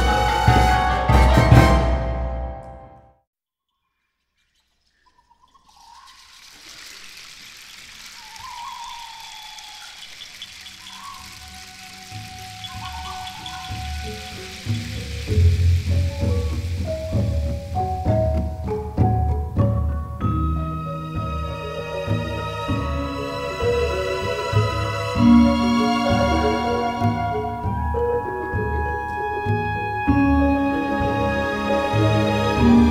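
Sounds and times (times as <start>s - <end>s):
hissing rustling texture: 5.5s - 19.8s
low drum strokes: 12.1s - 20.4s
gamelan metallophone notes: 12.2s - 32.9s.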